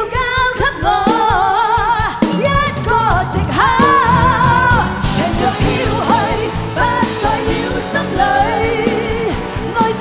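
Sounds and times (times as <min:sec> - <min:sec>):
woman singing pop ballad: 0:00.0 - 0:10.0
band playing: 0:01.0 - 0:10.0.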